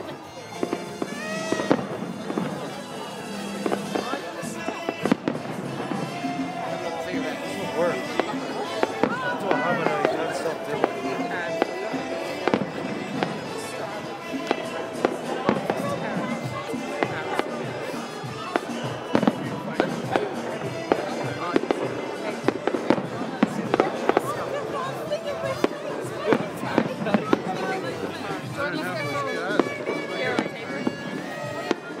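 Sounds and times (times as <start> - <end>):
background music: 0.0 - 32.0
voices: 0.0 - 32.0
fireworks bangs and crackles: 0.4 - 32.0.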